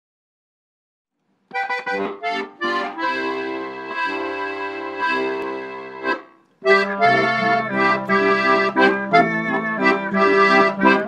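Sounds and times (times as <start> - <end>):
accordion chords: 1.5 - 11.0.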